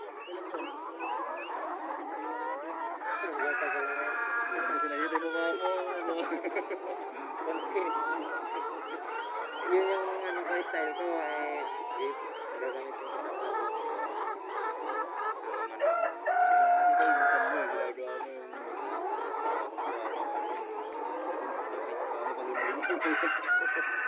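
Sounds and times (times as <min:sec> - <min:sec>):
chickens clucking: 0:00.0 - 0:24.0.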